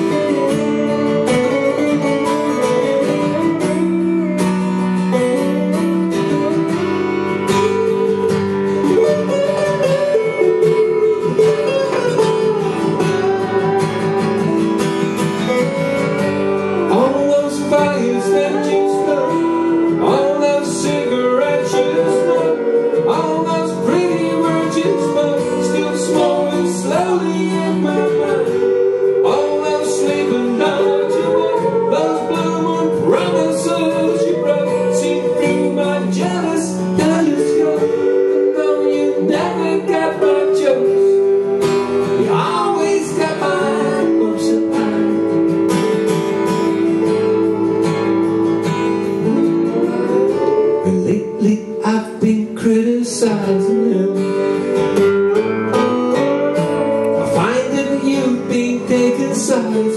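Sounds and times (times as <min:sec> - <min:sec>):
acoustic guitar strumming: 0:00.0 - 0:59.9
slide guitar lead: 0:00.0 - 0:59.9.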